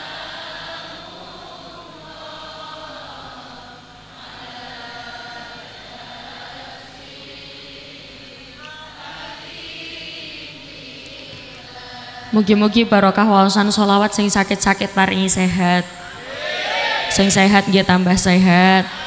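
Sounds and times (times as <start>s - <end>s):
group chanting in unison: 0.0s - 14.8s, 15.8s - 19.0s.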